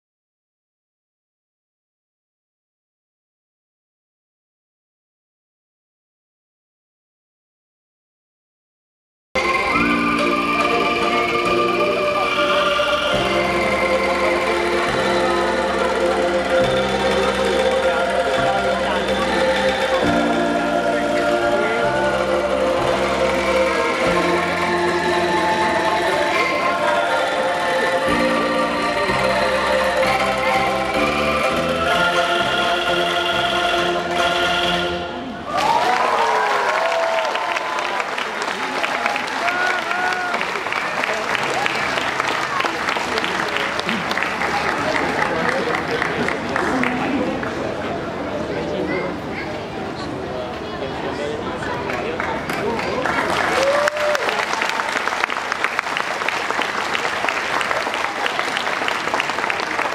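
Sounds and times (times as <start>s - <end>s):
low bass notes: 9.4s - 35.4s
audience applause and cheering: 35.4s - 47.8s, 51.8s - 59.9s.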